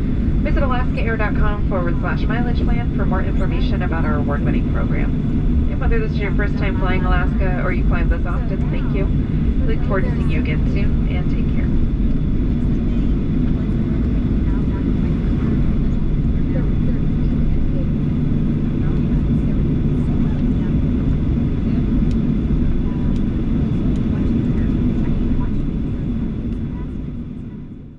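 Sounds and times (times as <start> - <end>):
aircraft engines rumbling: 0.0 - 27.9.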